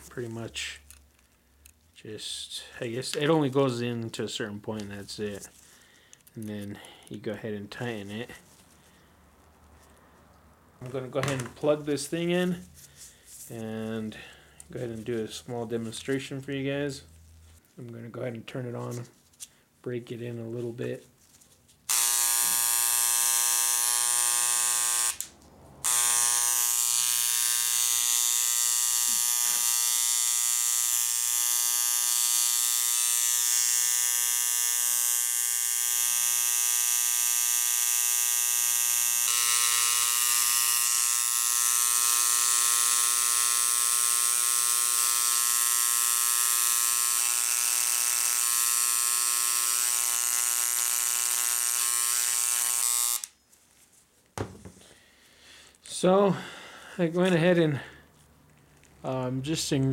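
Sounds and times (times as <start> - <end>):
electric engraver buzzing: 21.9 - 53.4.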